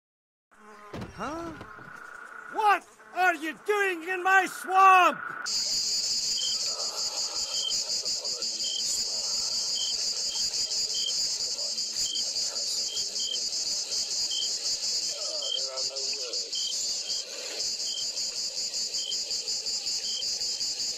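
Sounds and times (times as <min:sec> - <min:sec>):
insect chirps: 0:00.6 - 0:20.9
insects trilling chorus: 0:00.6 - 0:20.9.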